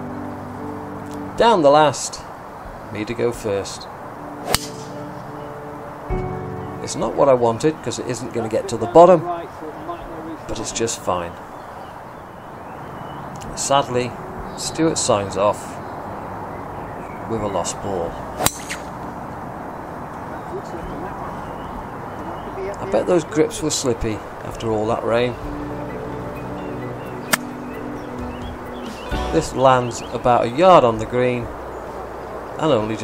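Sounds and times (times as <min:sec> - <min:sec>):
outdoor background noise: 0:00.0 - 0:33.0
golf driver striking ball: 0:04.4 - 0:05.1, 0:18.4 - 0:18.9, 0:27.3 - 0:27.6.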